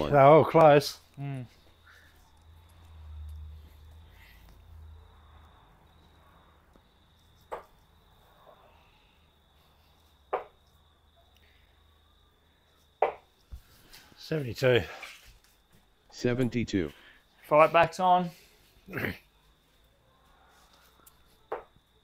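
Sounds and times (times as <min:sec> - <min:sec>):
darts hitting dartboard: 0:13.0 - 0:13.2, 0:21.5 - 0:21.7.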